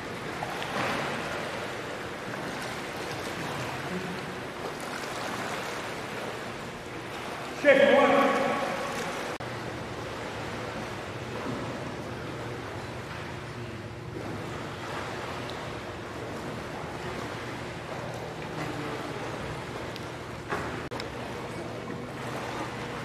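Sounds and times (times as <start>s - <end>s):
water splashing from swimming: 0.0s - 23.0s.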